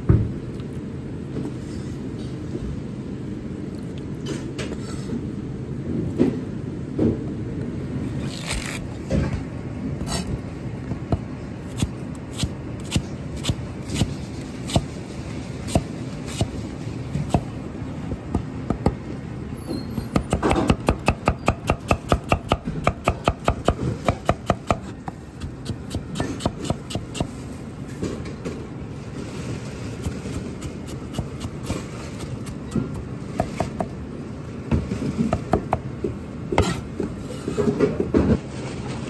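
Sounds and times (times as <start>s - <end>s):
cleaver chopping onion on board: 15.7s - 16.6s, 17.2s - 17.5s, 20.1s - 27.4s, 30.0s - 33.9s, 36.6s - 36.8s.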